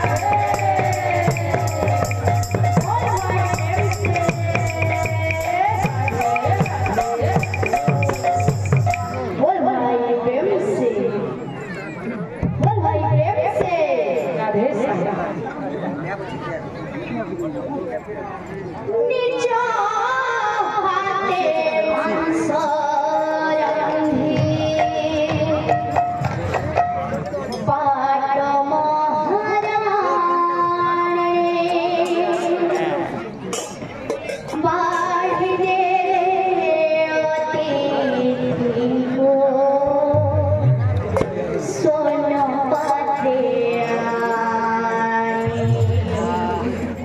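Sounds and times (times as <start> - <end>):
woman singing into a microphone: 0.0 - 11.2, 12.6 - 15.0, 18.9 - 26.1, 27.6 - 33.0, 34.5 - 41.0, 41.6 - 47.0
overlapping chatter of voices: 0.0 - 47.0.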